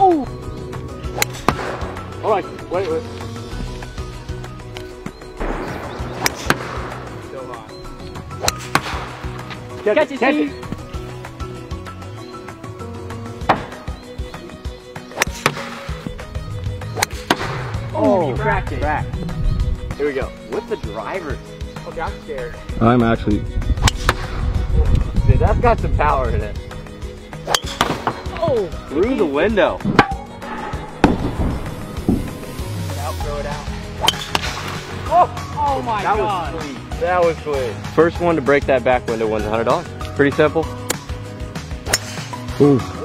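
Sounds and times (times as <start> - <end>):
background music with beat: 0.0 - 43.0
golf club striking ball: 1.0 - 2.2, 5.6 - 7.2, 8.4 - 9.6, 13.4 - 14.0, 15.1 - 16.2, 16.8 - 17.8, 23.8 - 24.4, 27.4 - 28.3, 34.0 - 35.0, 41.8 - 42.4
golf balls hitting car: 13.4 - 13.9, 16.9 - 17.8, 34.0 - 34.9.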